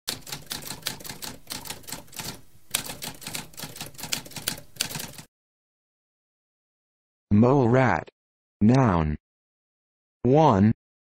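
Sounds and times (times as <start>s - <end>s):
typewriter keys clacking: 0.1s - 5.3s.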